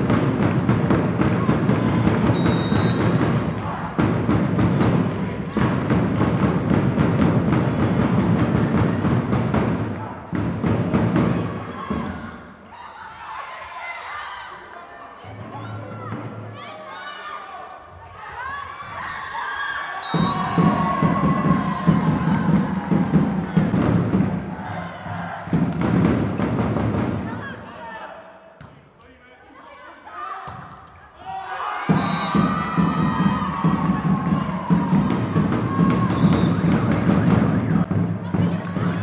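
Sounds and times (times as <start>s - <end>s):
steady drum beat: 0.0s - 11.6s, 20.2s - 27.3s, 31.9s - 39.0s
crowd chanting: 1.4s - 4.3s, 20.0s - 25.8s.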